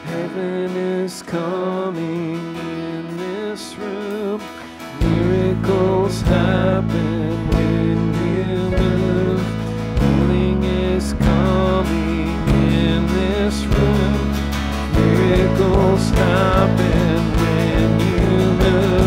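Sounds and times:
guitar and keyboard: 0.0 - 19.0
person singing: 0.0 - 19.0
bass and drums: 5.0 - 19.0.

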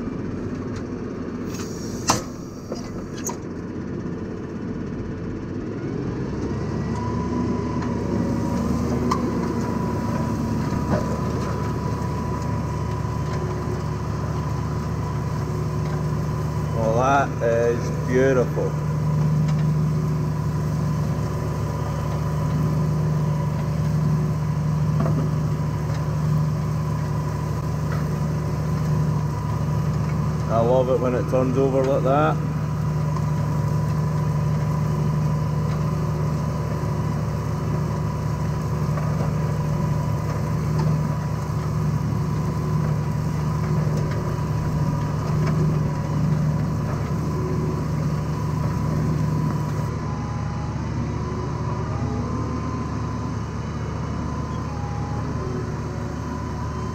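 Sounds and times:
tractor engine running: 0.0 - 56.9.

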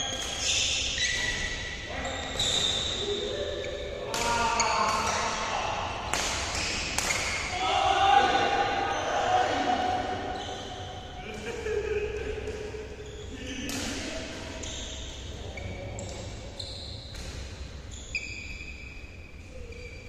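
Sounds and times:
players calling out: 1.9 - 15.7
rackets striking shuttlecock: 6.0 - 7.5.

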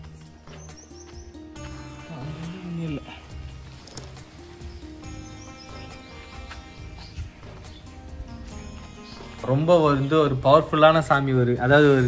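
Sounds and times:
devotional music with held tones: 0.0 - 12.0.

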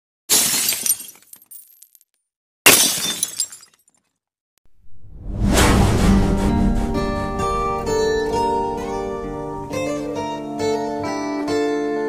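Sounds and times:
glass shattering: 0.3 - 2.1, 2.7 - 4.1
rising swell into music: 4.8 - 11.0.

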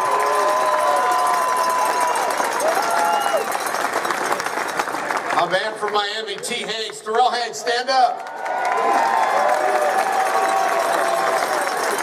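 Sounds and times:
shouts and whoops: 0.0 - 3.6, 8.2 - 12.0
crowd applauding and cheering: 0.0 - 12.0.

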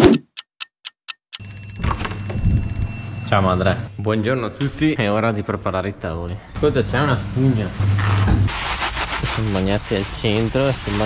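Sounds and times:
clock ticking: 0.0 - 2.7
alarm clock ringing: 1.1 - 3.7.

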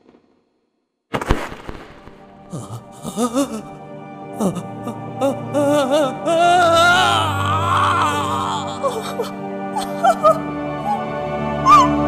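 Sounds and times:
loud crackling crash: 1.1 - 2.5.

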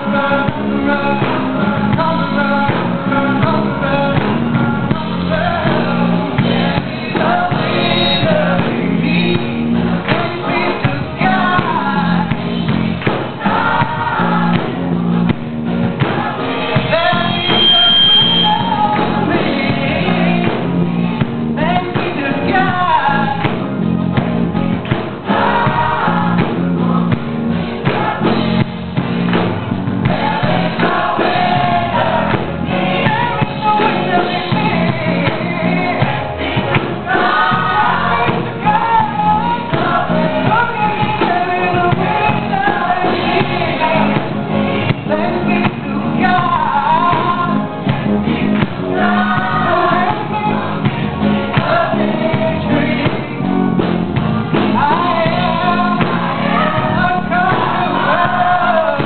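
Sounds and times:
gospel choir singing: 0.0 - 59.0.

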